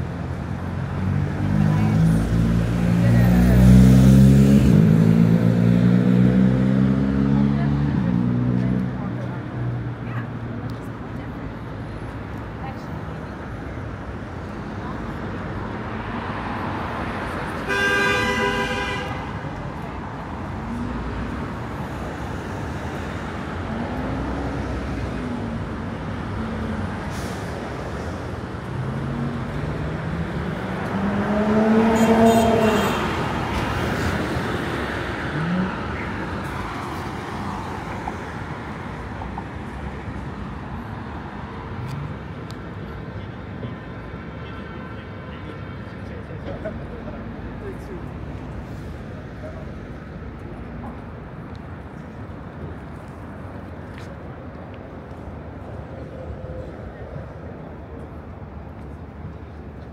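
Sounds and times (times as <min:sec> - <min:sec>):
street traffic noise: 0:00.0 - 0:59.9
passers-by talking: 0:00.1 - 0:44.3, 0:45.1 - 0:59.9
car horn honking: 0:17.7 - 0:19.4.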